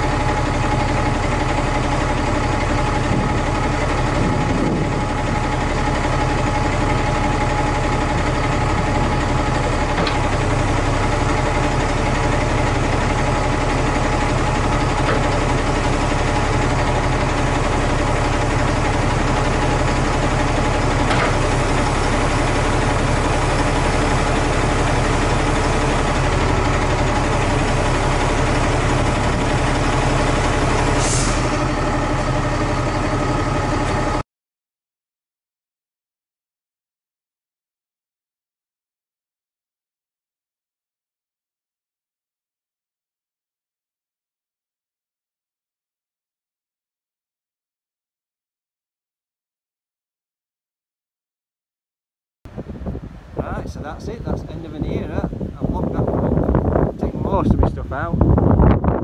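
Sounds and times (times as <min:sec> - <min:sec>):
diesel engine idling: 0:00.0 - 0:34.2, 0:52.5 - 0:59.0.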